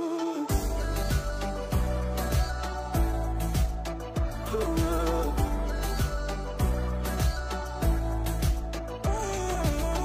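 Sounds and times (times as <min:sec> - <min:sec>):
held bass and melody tones: 0:00.5 - 0:10.0.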